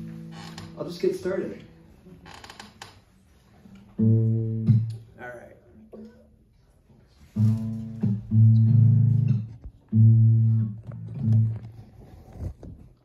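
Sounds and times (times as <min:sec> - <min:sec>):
acoustic guitar plucked low notes: 0:00.0 - 0:02.0, 0:03.7 - 0:05.1, 0:07.2 - 0:11.9.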